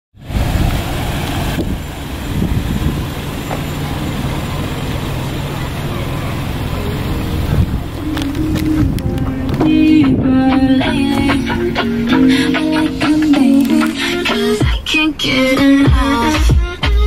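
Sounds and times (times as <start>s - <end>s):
motor vehicle engine rumbling: 0.1s - 17.0s
traffic noise: 0.1s - 17.0s.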